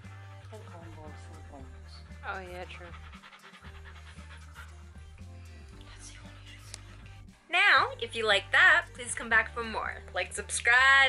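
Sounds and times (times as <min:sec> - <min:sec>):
dog panting: 0:00.0 - 0:06.9
background music: 0:00.0 - 0:11.0.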